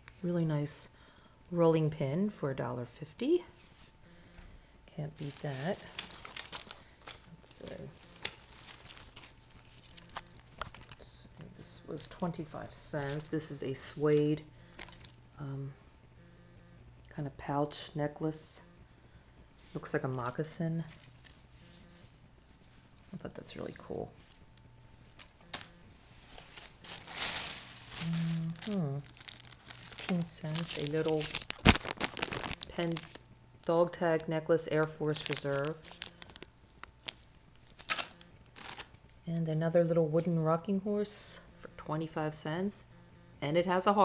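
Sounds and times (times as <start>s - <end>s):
crinkling and rustling: 5.1s - 15.2s, 19.6s - 40.4s.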